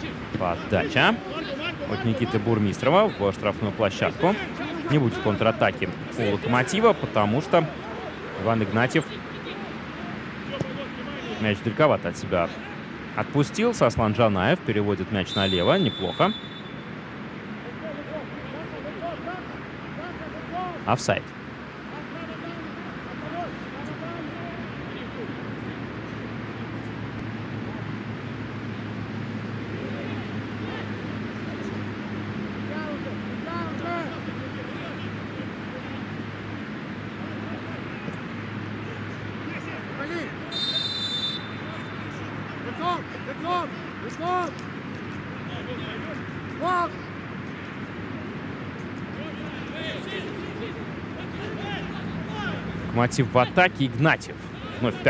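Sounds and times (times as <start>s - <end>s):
players shouting short calls: 39.6s - 44.6s, 45.7s - 47.1s.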